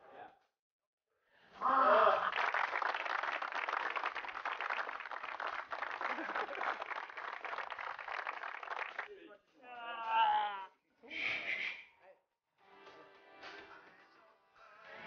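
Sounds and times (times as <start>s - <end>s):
crowd clapping and cheering: 2.0s - 9.1s
person shouting: 9.7s - 10.7s.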